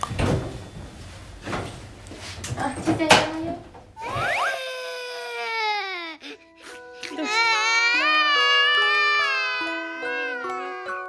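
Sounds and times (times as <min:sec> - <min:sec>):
door shutting with a thud: 0:00.1 - 0:00.8
whistle and sliding tone effect: 0:04.0 - 0:04.6.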